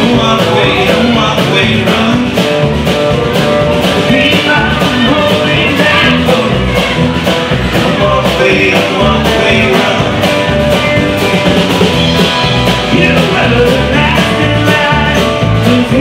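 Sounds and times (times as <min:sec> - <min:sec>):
steady drum beat: 0:00.0 - 0:16.0
strummed acoustic guitars: 0:00.0 - 0:16.0.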